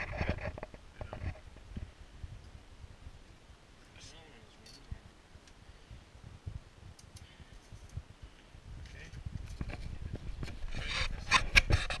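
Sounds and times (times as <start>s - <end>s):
rubbing and scraping: 0.0s - 1.5s, 8.9s - 12.0s.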